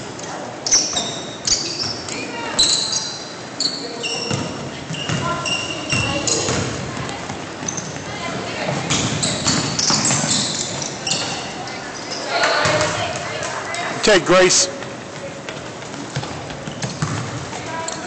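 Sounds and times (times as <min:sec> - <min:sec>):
voices echoing in hall: 0:00.0 - 0:16.6, 0:17.4 - 0:18.0
sneakers squeaking on gym floor: 0:00.6 - 0:14.0, 0:14.8 - 0:18.0
basketball bouncing: 0:04.3 - 0:10.4, 0:14.8 - 0:17.6.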